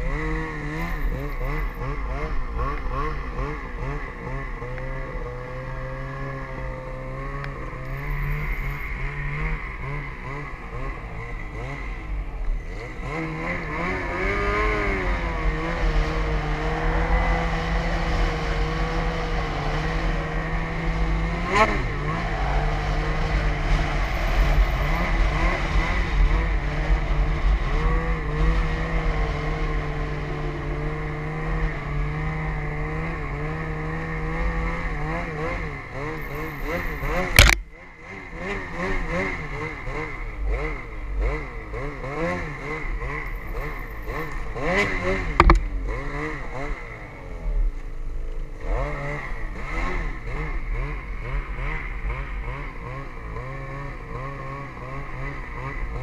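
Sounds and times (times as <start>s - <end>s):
snowmobile engine running: 0.0s - 56.0s.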